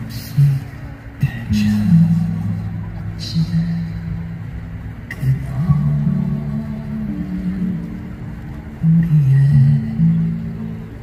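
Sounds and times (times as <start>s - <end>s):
acoustic guitar: 0.0s - 11.0s
low rumble: 0.0s - 11.0s
man singing: 0.0s - 11.0s.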